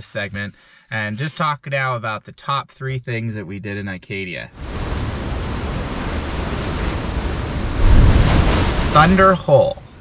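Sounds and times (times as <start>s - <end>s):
wind rumbling on microphone: 4.6s - 9.3s
ocean surf breaking on rocks: 4.6s - 9.7s.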